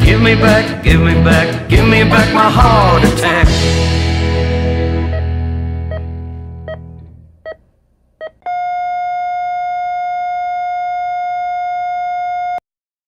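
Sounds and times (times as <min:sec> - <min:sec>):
heart monitor beeps: 0:08.2 - 0:12.6
long steady flatline tone: 0:08.4 - 0:12.6.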